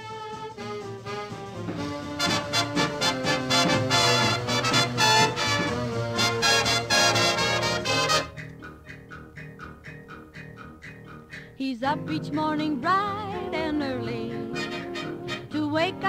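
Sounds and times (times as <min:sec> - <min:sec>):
swing music with brass: 0:00.0 - 0:08.7, 0:11.9 - 0:16.0
plucked notes: 0:01.7 - 0:16.0.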